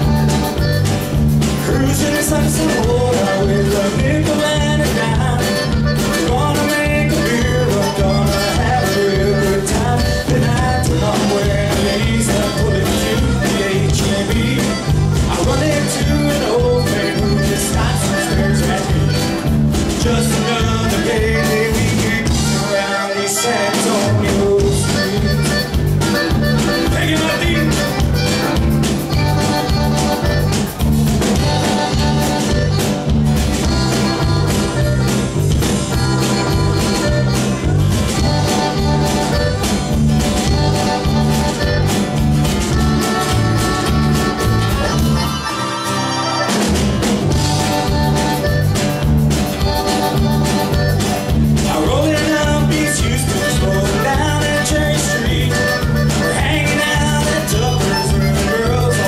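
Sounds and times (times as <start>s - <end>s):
band with bass guitars and drums: 0.0s - 59.0s
button accordion melody: 0.0s - 59.0s.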